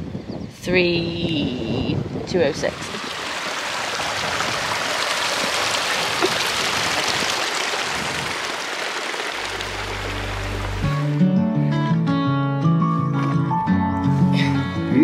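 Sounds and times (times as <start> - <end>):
mountain stream over rocks: 2.5 - 11.2
background music: 9.6 - 15.0.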